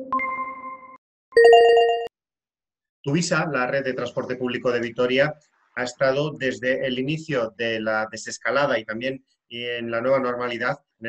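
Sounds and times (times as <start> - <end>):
electronic chime: 0.0 - 2.1.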